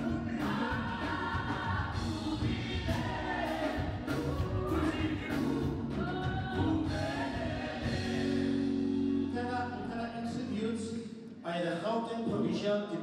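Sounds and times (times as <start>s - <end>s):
vocal group singing gospel: 0.0s - 9.8s
instrumental backing with bass: 0.0s - 10.6s.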